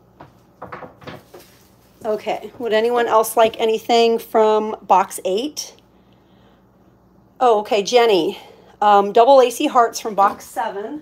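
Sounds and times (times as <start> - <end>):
plastic and wood tapping: 0.2 - 1.5.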